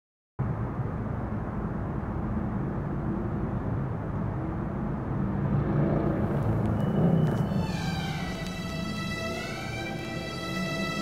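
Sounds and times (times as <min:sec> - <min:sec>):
low rumble of city traffic: 0:00.4 - 0:11.0.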